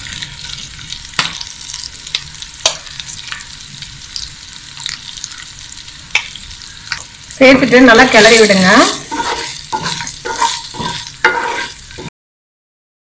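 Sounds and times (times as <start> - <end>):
potatoes sizzling in oil: 0.0 - 12.1.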